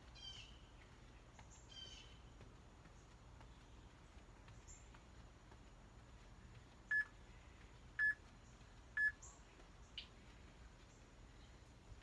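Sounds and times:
timer beeping: 6.9s - 7.1s, 8.0s - 8.2s, 9.0s - 9.2s.

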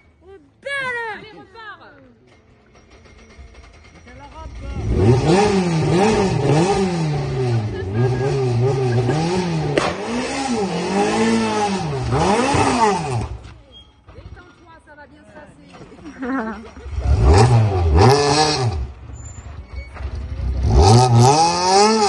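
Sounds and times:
rally car engine revving: 4.4s - 13.6s, 16.7s - 22.0s
sharp crack: 9.5s - 13.6s.

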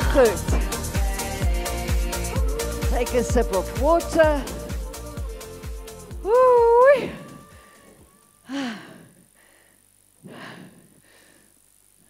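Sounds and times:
high drawn-out voice: 0.0s - 0.6s, 6.2s - 7.7s
workout music beat: 0.0s - 8.4s.

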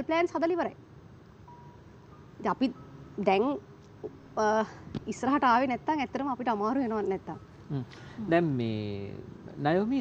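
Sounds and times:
faint brief steady tone: 1.5s - 3.0s.

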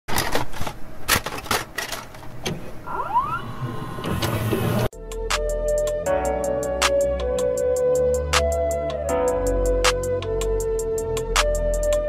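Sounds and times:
tape motor whirring: 2.8s - 4.9s
whines gliding up in pitch: 2.8s - 4.9s.

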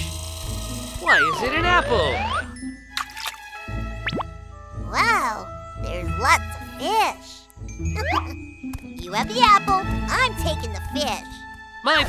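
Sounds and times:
children's background music: 0.9s - 12.0s.

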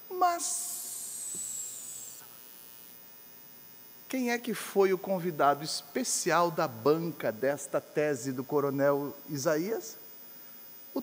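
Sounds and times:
electrical hum: 0.0s - 11.0s
man hissing s sound: 0.5s - 1.6s.

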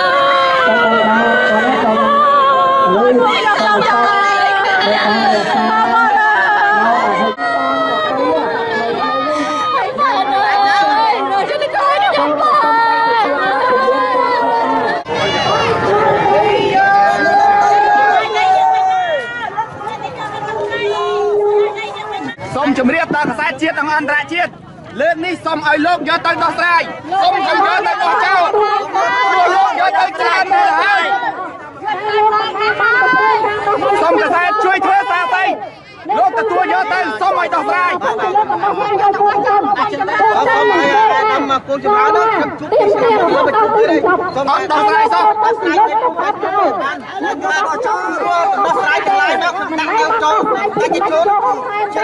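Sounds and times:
overlapping voices: 0.0s - 23.6s, 24.4s - 52.0s
crowd talking: 0.0s - 52.0s.

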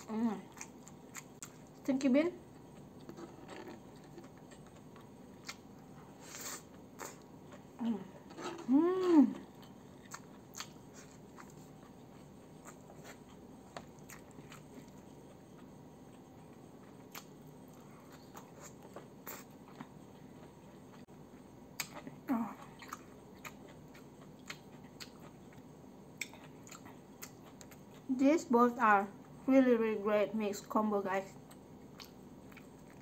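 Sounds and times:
chewing food: 0.0s - 1.9s, 2.5s - 8.7s, 9.4s - 28.2s, 31.4s - 33.0s
low room hum: 0.0s - 33.0s
person saying oh: 8.7s - 9.4s.

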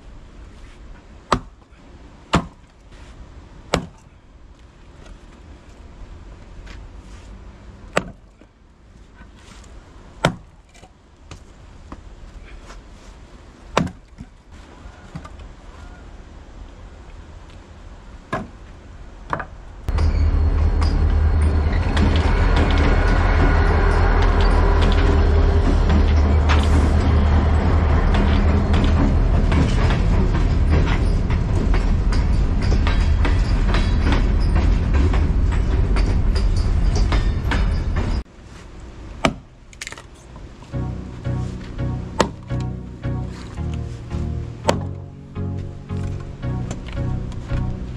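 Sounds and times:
maul splitting wood: 1.3s - 1.7s, 2.3s - 2.7s, 3.7s - 4.1s, 7.9s - 8.4s, 10.2s - 11.4s, 13.7s - 14.4s, 39.2s - 40.1s
train passing rumble: 19.0s - 38.3s, 40.5s - 47.9s.

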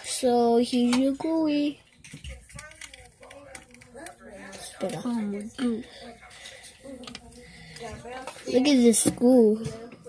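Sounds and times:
faint voices: 0.0s - 10.0s
slime clicking and crackling: 2.0s - 5.7s.

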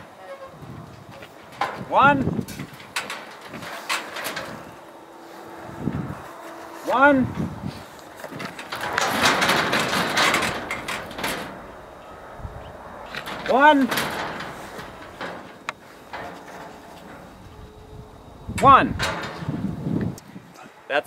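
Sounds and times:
steel panels rattling and scraping: 0.0s - 20.5s.

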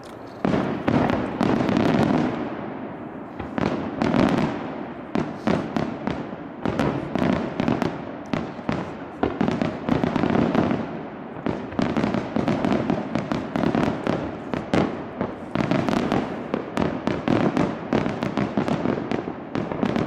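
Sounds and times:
fireworks bursting with echoing bangs: 0.0s - 20.0s.

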